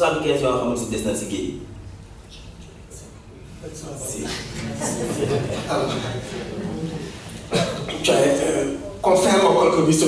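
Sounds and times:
men's voices murmuring: 0:03.1 - 0:09.0
cough-like burst into microphone: 0:07.4 - 0:08.2.

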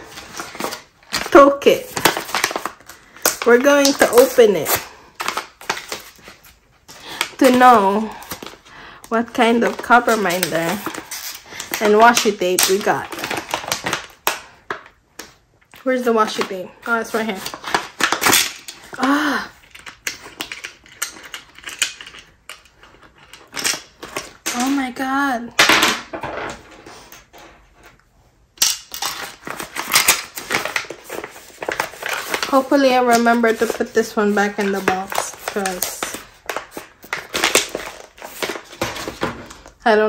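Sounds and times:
plastic packet crinkling: 0:00.0 - 0:15.4, 0:28.8 - 0:39.8
pouch clicking and crinkling: 0:28.9 - 0:39.7.

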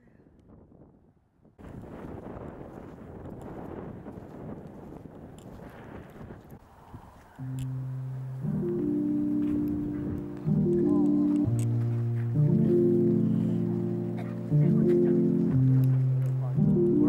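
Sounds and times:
wind on microphone: 0:00.0 - 0:10.7
background music low notes: 0:07.4 - 0:17.0.

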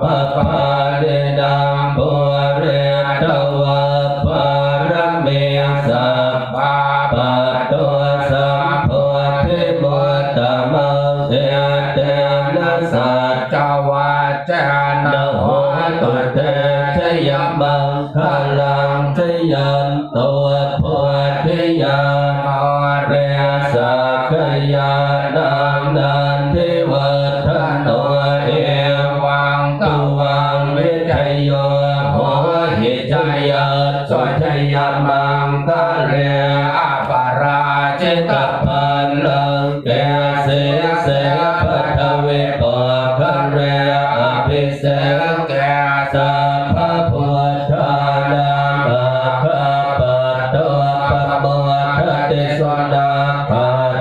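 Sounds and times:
monks chanting in unison: 0:00.0 - 0:54.0.

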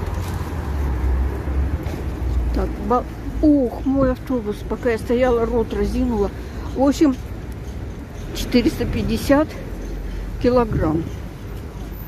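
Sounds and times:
cars passing: 0:00.0 - 0:12.0
low traffic rumble: 0:00.0 - 0:12.0.

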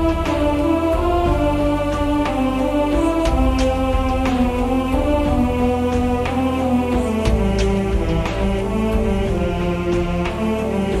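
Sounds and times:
voices singing sustained chords: 0:00.0 - 0:11.0.

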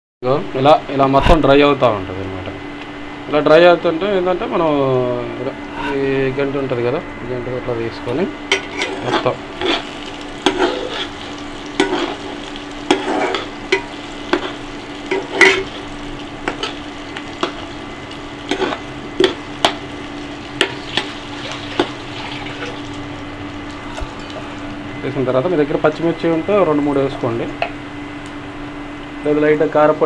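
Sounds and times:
metal spoon scraping a pan: 0:08.5 - 0:17.7, 0:18.4 - 0:19.8
onions sizzling in a pan: 0:08.5 - 0:25.3.

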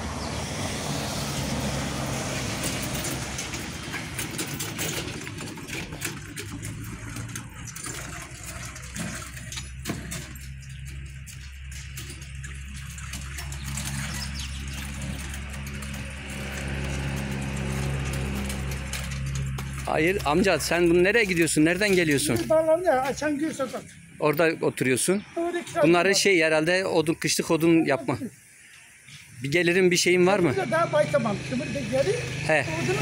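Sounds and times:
vehicle engine humming: 0:00.0 - 0:33.0
hand trolley rattling over asphalt: 0:01.6 - 0:24.0, 0:30.7 - 0:33.0.

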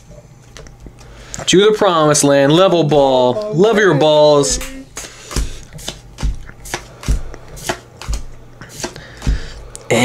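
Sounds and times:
trading cards snapping: 0:04.6 - 0:09.5.

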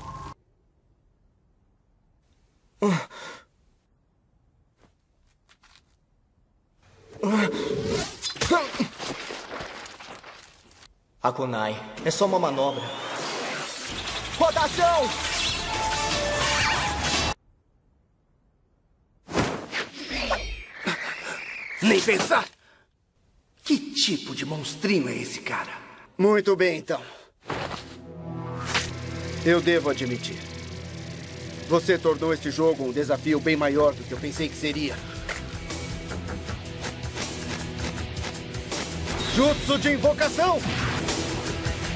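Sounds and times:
music: 0:13.9 - 0:17.4, 0:28.0 - 0:41.9.

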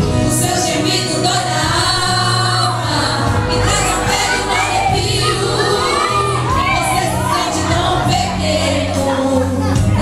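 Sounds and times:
instrumental backing: 0:00.0 - 0:10.0
women singing gospel: 0:00.0 - 0:10.0
amplified lead voice: 0:00.2 - 0:10.0.

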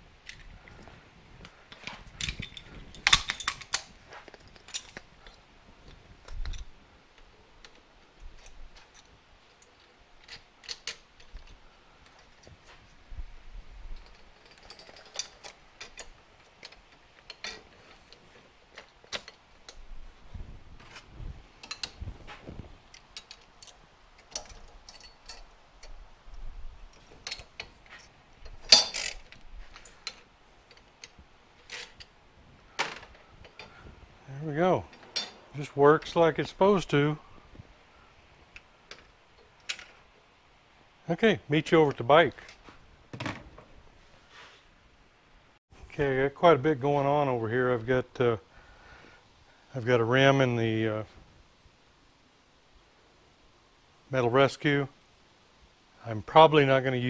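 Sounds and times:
metallic clicks and clinks: 0:01.7 - 0:05.4, 0:07.6 - 0:12.5, 0:14.0 - 0:19.8, 0:22.9 - 0:26.0, 0:26.9 - 0:32.1.

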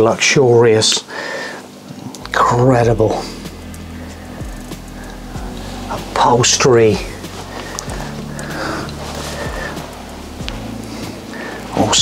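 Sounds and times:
background music with low notes: 0:00.0 - 0:12.0.

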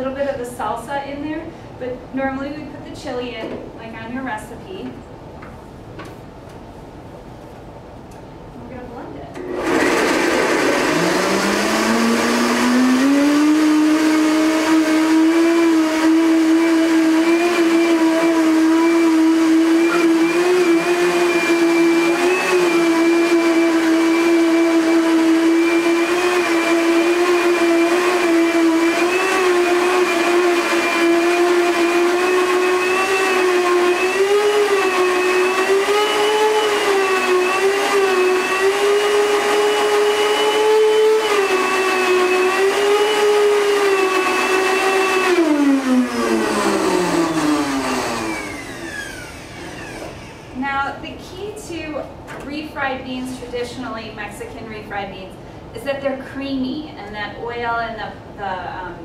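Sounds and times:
blender motor whine: 0:09.4 - 0:50.6.

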